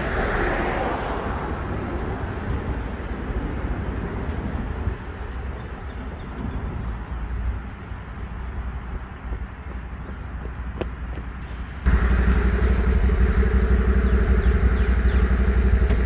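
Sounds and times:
distant mower engine running: 11.9s - 16.0s.

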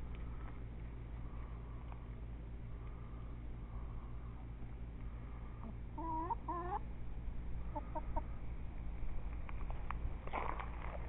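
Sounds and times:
steady low hum: 0.0s - 11.0s
hens clucking: 5.6s - 6.9s, 7.6s - 8.4s.

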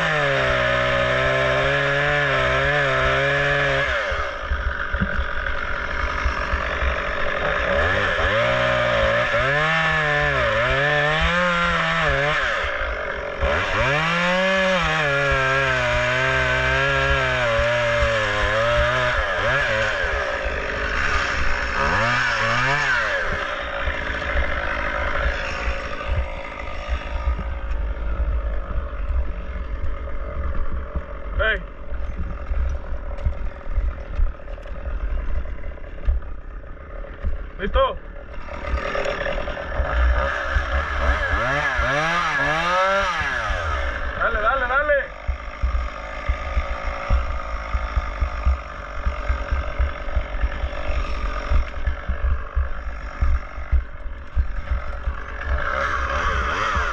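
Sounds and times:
chainsaw cutting wood: 0.0s - 56.9s
crackling and knocking: 4.4s - 8.5s, 23.2s - 37.5s, 45.1s - 56.9s.

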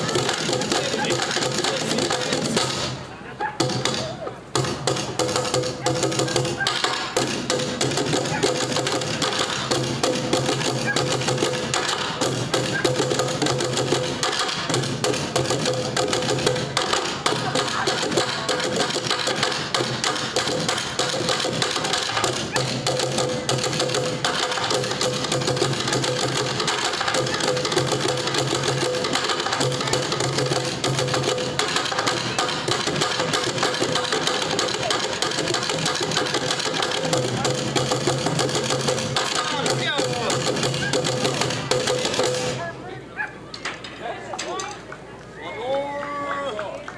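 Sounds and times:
drumming on plastic buckets: 0.0s - 42.7s.

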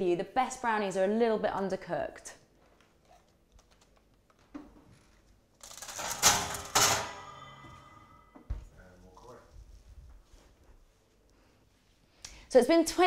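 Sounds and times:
metal baking tin clattering: 5.8s - 7.6s.

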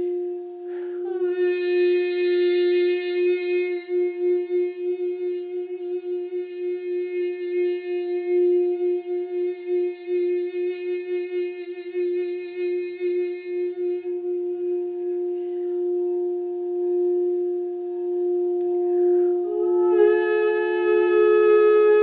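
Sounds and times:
woman humming: 0.0s - 22.0s.

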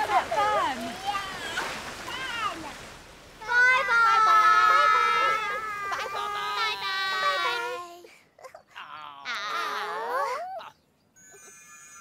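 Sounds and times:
girls calling together: 3.4s - 7.9s.

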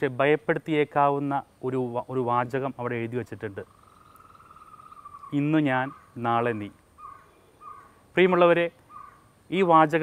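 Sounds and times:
man speaking: 0.0s - 3.7s, 5.3s - 6.8s, 8.1s - 8.8s, 9.5s - 10.0s.

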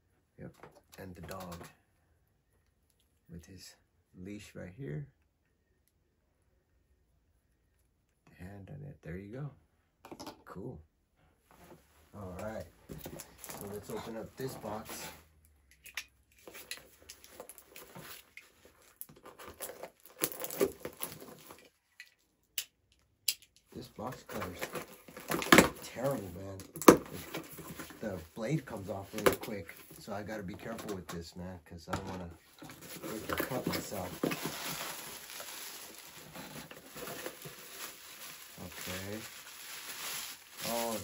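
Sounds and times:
cardboard box rustling: 24.2s - 26.4s, 27.0s - 30.0s, 32.5s - 41.0s
plastic bag crinkling: 32.5s - 41.0s
cardboard box being opened: 32.6s - 39.3s.

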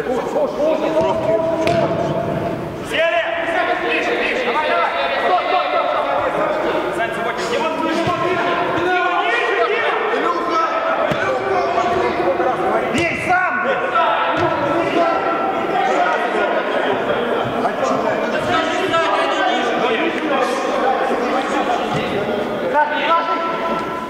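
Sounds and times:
men shouting and calling: 0.0s - 24.0s.

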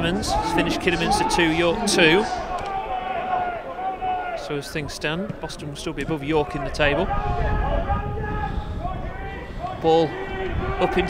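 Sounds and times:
commentator speaking: 0.0s - 2.5s
men calling out: 0.0s - 4.5s.

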